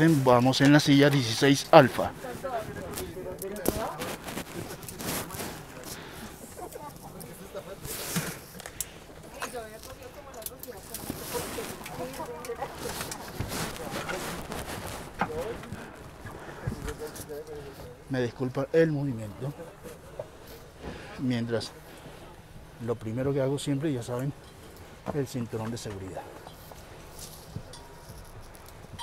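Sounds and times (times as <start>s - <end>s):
chatter of passengers: 1.5s - 23.0s.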